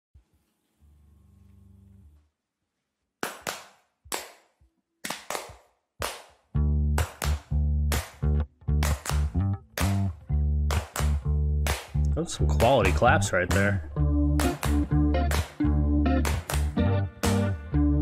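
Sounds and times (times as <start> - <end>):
sharp hand claps: 3.2 - 17.7
loud low bass line: 7.6 - 18.0.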